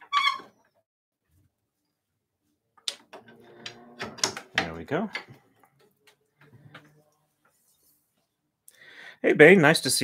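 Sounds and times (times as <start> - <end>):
wooden clicks and taps: 2.8 - 3.2.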